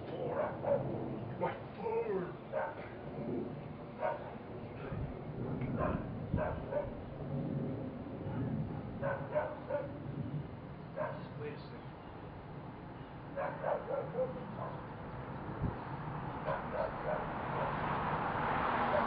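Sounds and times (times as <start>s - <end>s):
dog barking and yipping: 0.3s - 0.9s, 2.5s - 2.8s, 4.0s - 4.3s, 5.8s - 7.0s, 9.0s - 9.9s, 11.0s - 11.2s, 13.4s - 14.8s, 16.4s - 17.8s.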